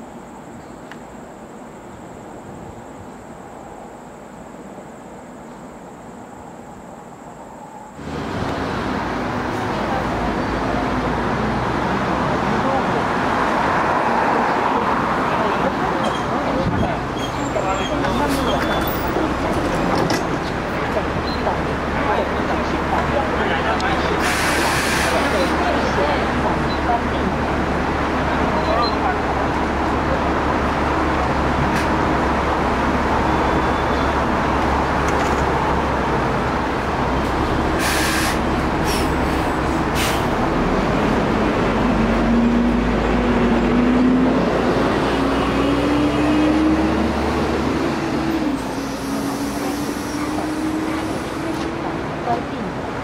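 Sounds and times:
bus engine: 0.0 - 53.0
compressed air hiss: 24.2 - 25.6, 37.8 - 40.3.

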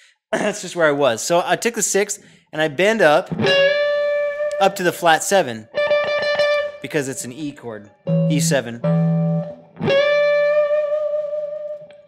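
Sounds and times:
electric guitar string bend: 8.1 - 10.3.

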